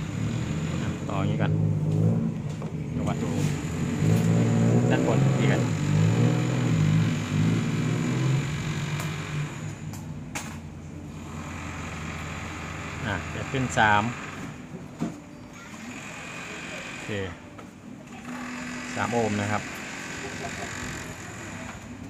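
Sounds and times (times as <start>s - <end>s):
vehicle engine humming: 0.0s - 22.0s.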